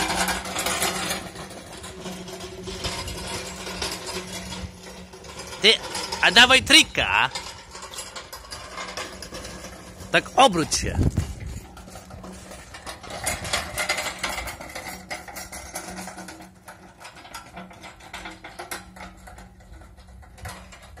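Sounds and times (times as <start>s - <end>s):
pallet jack rattling over cobblestones: 0.0s - 21.0s.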